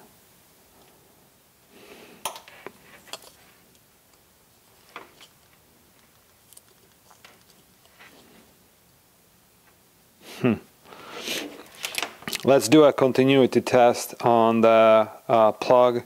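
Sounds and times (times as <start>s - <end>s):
soft rubbing: 2.5s - 8.7s.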